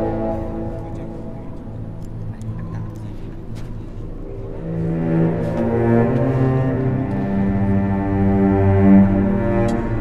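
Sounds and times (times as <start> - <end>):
low bowed strings: 0.0 - 10.0.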